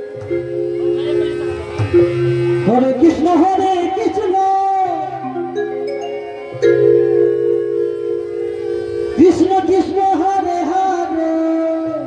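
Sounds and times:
harmonium sustained chord: 0.0s - 11.8s.

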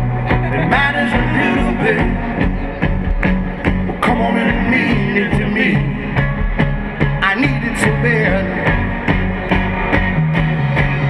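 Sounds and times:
drums steady beat: 0.0s - 11.0s
live rock band playing: 0.0s - 11.0s.

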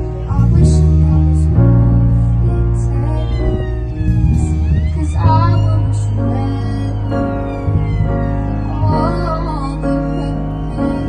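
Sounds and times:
sustained low chords: 0.0s - 11.0s.

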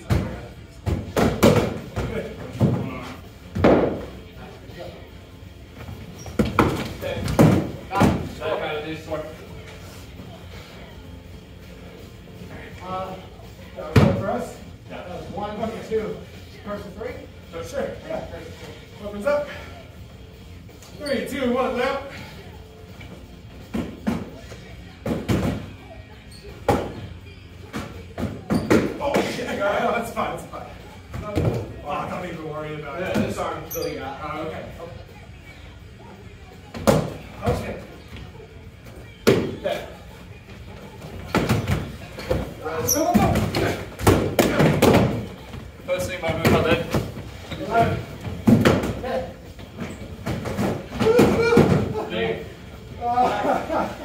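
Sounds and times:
fighters shouting: 51.0s - 52.1s.

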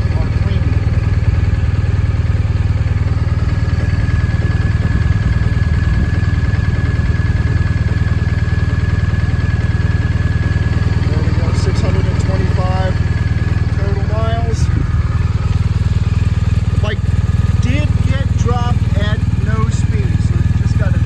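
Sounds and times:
motorcycle engine idling: 0.0s - 21.0s.

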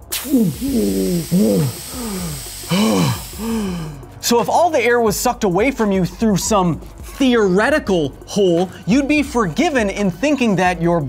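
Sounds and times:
burst of hiss: 0.0s - 4.0s
man groaning and gasping: 0.2s - 4.2s.

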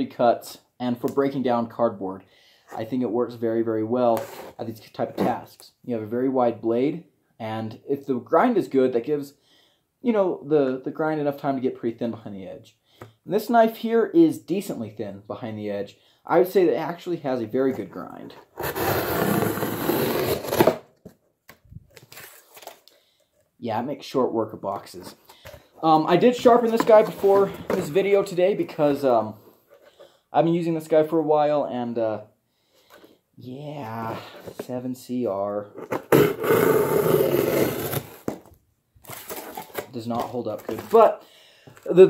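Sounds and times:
cardboard scraping and tapping: 26.4s - 28.0s.

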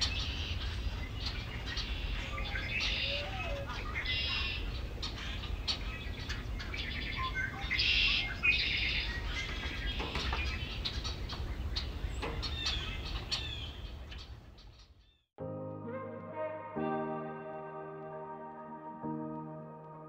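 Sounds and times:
birds chirping and singing: 0.0s - 15.2s.

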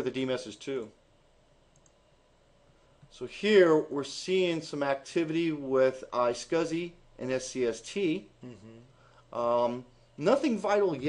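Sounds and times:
computer mouse clicks: 1.7s - 2.0s.

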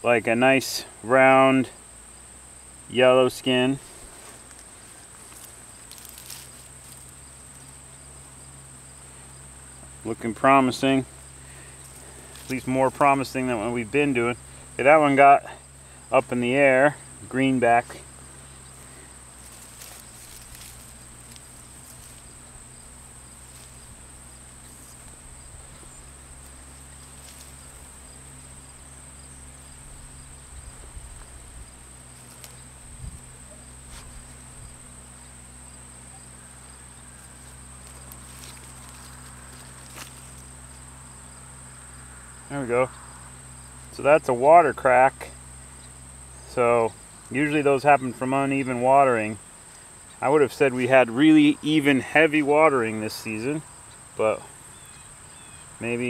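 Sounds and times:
insects trilling: 0.0s - 56.0s
hands digging through soil: 5.2s - 7.1s, 19.4s - 22.3s.

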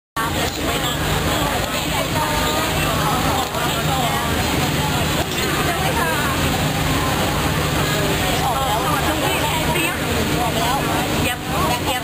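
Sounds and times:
people talking: 0.2s - 12.0s.

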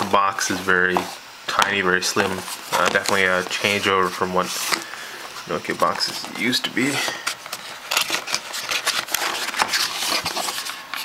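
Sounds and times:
cardboard scraping and rustling: 0.4s - 11.0s.

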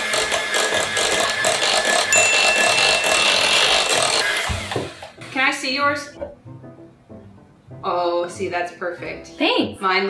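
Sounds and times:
electric hand mixer running: 0.0s - 2.1s.

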